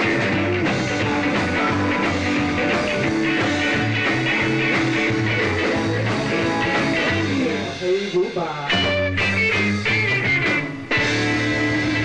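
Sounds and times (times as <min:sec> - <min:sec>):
electric guitar lick with bends: 0:00.0 - 0:08.1, 0:08.7 - 0:12.0
rock and roll band playing: 0:00.0 - 0:12.0.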